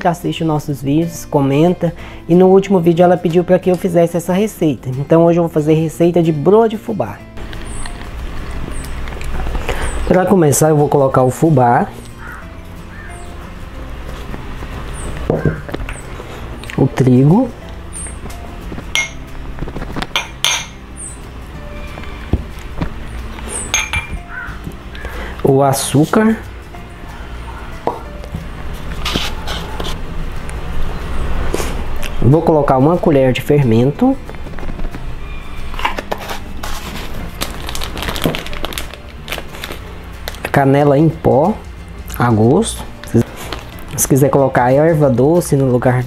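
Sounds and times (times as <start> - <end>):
faint background music: 0.0 - 46.0
glass cups clinking on steel bowl: 18.9 - 19.3, 20.1 - 20.8, 23.7 - 24.2
containers handled clicks and rustles: 35.8 - 40.4.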